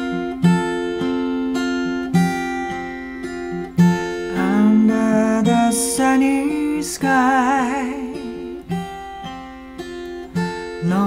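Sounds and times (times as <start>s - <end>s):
acoustic guitar chords: 0.0s - 11.0s
person singing: 4.2s - 8.9s, 10.6s - 11.0s.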